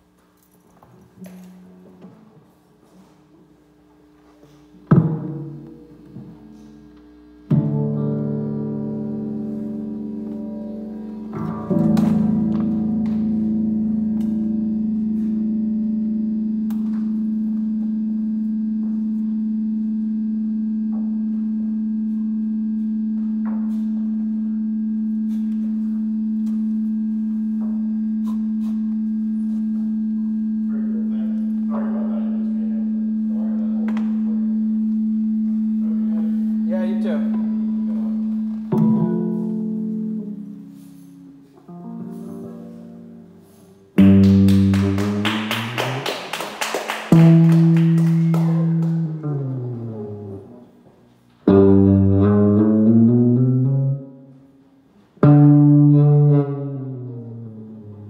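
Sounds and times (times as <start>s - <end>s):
low musical drone: 5.0s - 46.1s.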